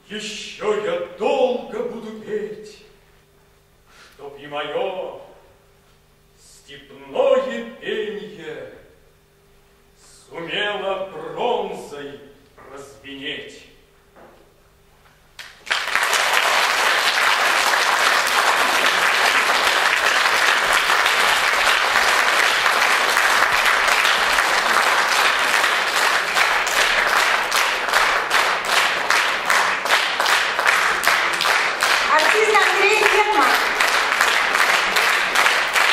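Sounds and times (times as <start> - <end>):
audience applauding: 15.4 - 35.9.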